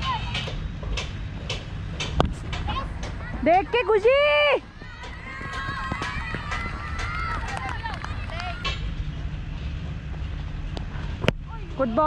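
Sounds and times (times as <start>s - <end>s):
players calling out: 2.7s - 8.8s
running footfalls: 4.2s - 8.6s.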